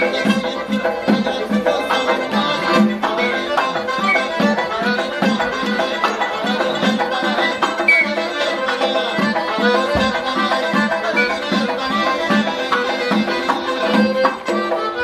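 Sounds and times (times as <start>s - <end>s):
accordion melody: 0.0s - 15.0s.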